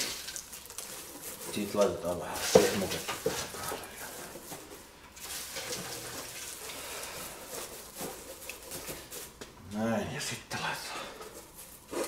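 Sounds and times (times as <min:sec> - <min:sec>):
dry straw rustling: 0:00.0 - 0:09.4.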